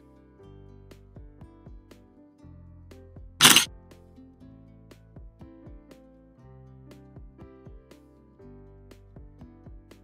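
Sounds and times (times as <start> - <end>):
camera shutter click: 3.4 - 3.7.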